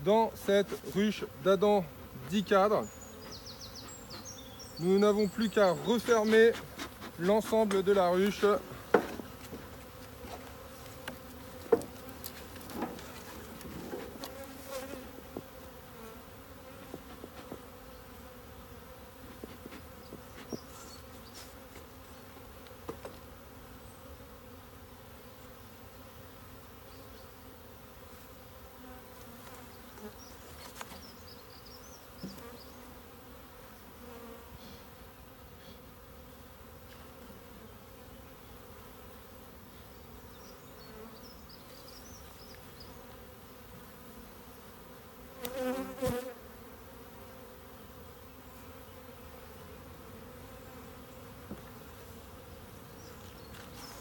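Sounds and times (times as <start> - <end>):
honeybees buzzing: 0.0 - 54.0
knocks of hive parts: 6.0 - 14.4.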